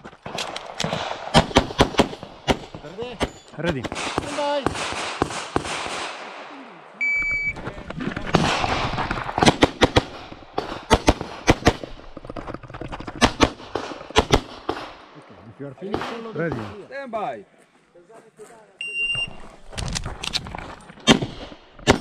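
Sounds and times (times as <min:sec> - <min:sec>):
pistol shots: 0:00.4 - 0:06.5, 0:08.3 - 0:12.0, 0:13.2 - 0:15.1, 0:21.0 - 0:22.0
shot timer beep: 0:07.0 - 0:07.6, 0:18.8 - 0:19.4.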